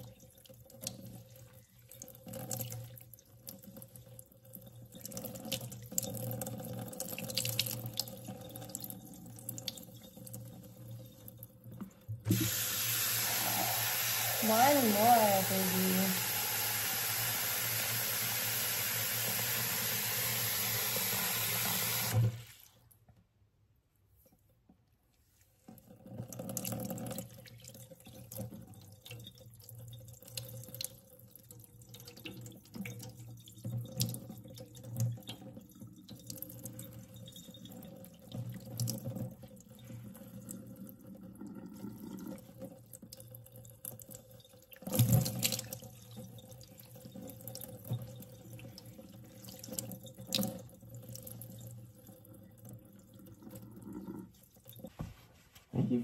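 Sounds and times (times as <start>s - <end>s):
water splashing into sink: 12.0s - 22.8s, 43.8s - 51.7s
water pouring over hair: 12.3s - 22.9s.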